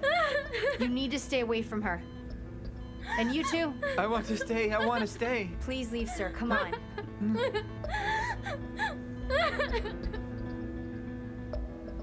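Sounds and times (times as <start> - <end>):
woman wailing and sobbing: 0.0 - 0.9, 3.0 - 5.2, 6.0 - 10.3
soft background music: 0.0 - 12.0.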